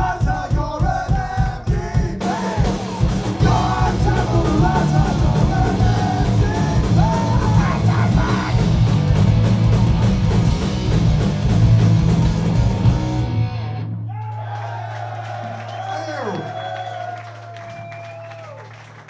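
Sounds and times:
punk band playing live: 0.0 - 13.9.

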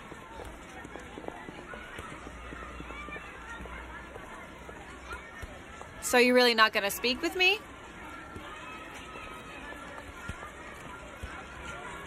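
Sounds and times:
distant children chattering: 0.0 - 6.1
running footsteps: 0.0 - 12.0.

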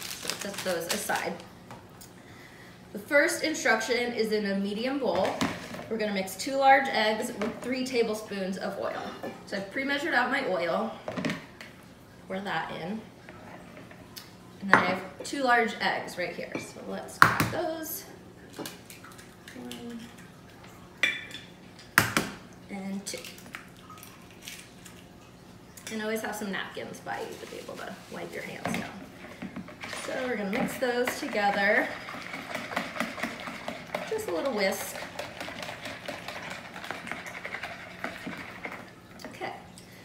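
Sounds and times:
wire whisk beating eggs in bowl: 29.7 - 38.9.

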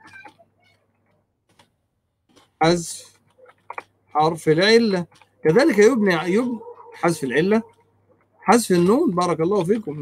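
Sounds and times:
faint keyboard keystrokes: 0.0 - 5.8.

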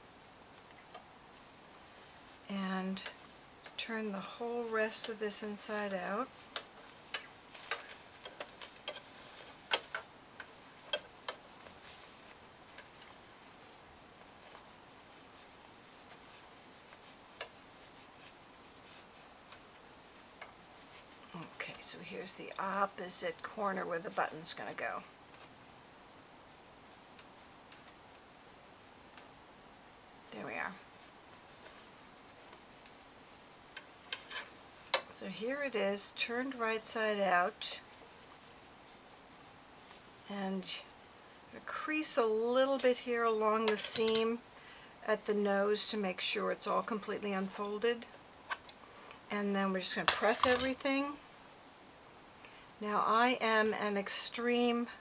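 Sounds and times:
fabric handling: 0.0 - 44.6
small clicks and taps: 6.5 - 11.4.

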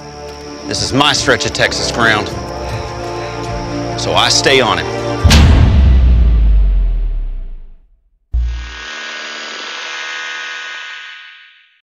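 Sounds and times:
deep hit: 5.2 - 8.5.

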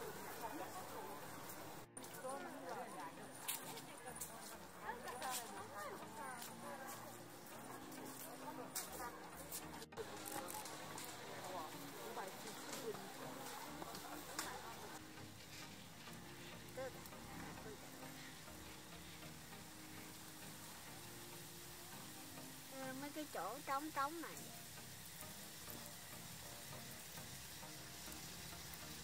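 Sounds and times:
people talking: 0.0 - 15.0, 16.8 - 18.3, 22.7 - 24.4
steady hiss: 0.0 - 29.0.

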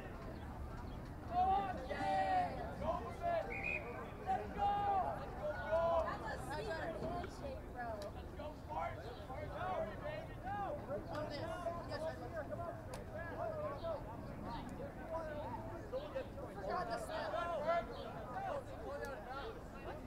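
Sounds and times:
low outdoor background: 0.0 - 20.0.

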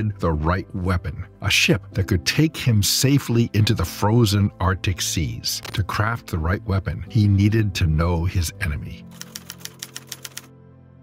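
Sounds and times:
background music: 0.0 - 11.0
typewriter key clicks: 9.1 - 10.5.

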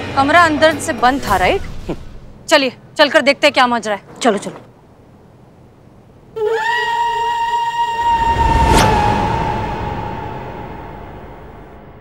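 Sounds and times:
high reedy suspense note: 7.7 - 12.0.

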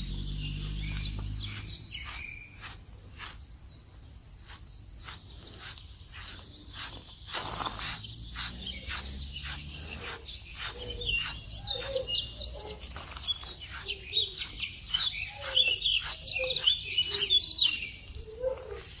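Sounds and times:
fox chirping squeaks: 0.0 - 3.5, 4.4 - 19.0
brush strokes through fur: 0.0 - 19.0.

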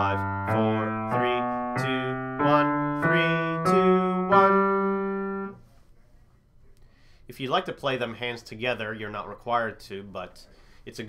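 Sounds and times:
piano scale: 0.0 - 5.6.

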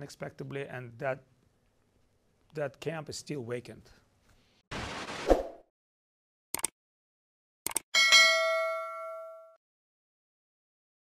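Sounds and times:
bell chime: 8.0 - 9.6.

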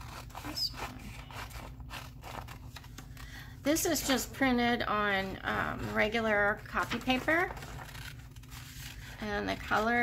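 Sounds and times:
scissors snipping paper: 0.0 - 3.2.

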